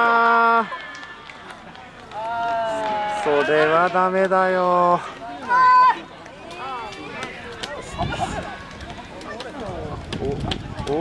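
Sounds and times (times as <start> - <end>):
quiet ballpark background: 0.0 - 11.0.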